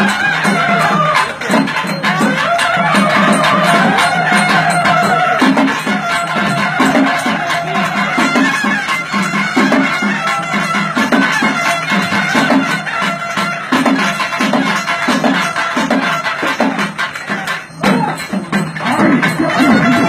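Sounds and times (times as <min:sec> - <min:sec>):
regular drum beat: 0:00.0 - 0:20.0
shrill reedy wind instrument: 0:00.0 - 0:20.0.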